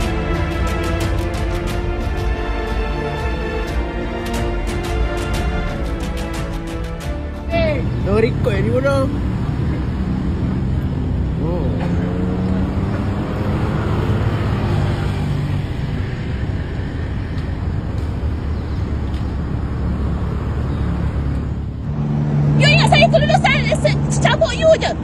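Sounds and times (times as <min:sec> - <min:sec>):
car engine hum: 0:00.0 - 0:25.0
cars driving past: 0:00.0 - 0:25.0.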